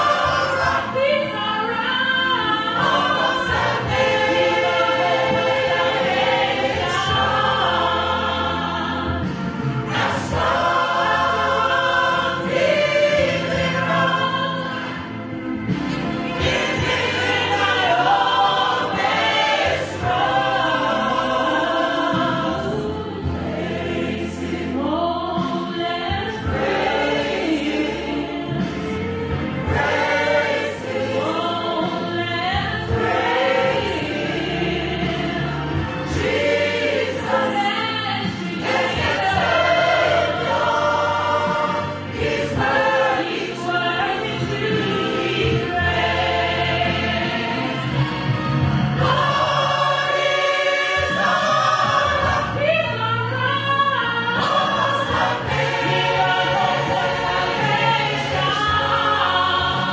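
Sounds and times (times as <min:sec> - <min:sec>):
choir singing a hymn: 0:00.0 - 0:59.9.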